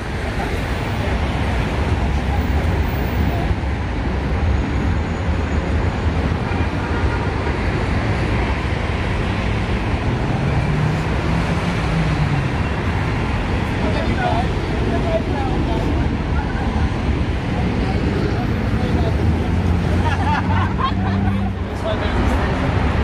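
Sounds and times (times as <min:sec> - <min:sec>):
rumble of passing cars: 0:00.0 - 0:23.0.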